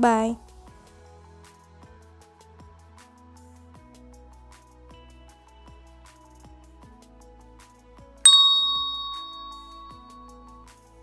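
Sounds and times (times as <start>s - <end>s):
quiet background music: 0.0s - 0.9s
bright bell ding: 8.3s - 10.4s.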